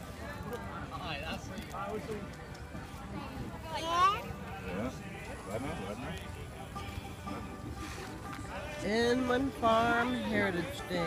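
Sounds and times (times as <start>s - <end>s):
faint music playing: 0.0s - 11.0s.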